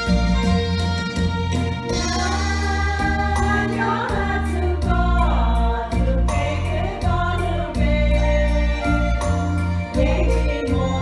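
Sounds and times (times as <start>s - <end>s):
instrumental accompaniment with low bass: 0.0s - 11.0s
women's choir singing a hymn: 2.0s - 11.0s.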